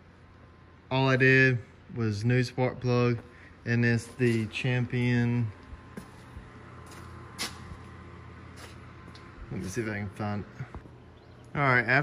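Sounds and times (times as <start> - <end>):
low background hum: 0.0 - 12.0
rustles and scuffs: 4.0 - 4.7, 5.6 - 9.4.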